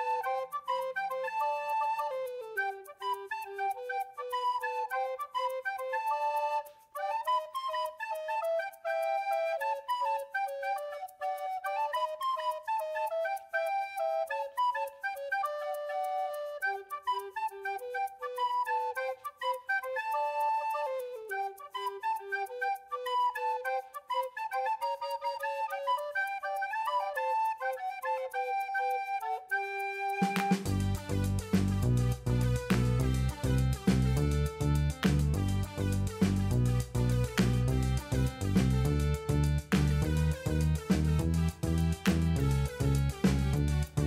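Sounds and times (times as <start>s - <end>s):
flute-like melody: 0.0s - 44.0s.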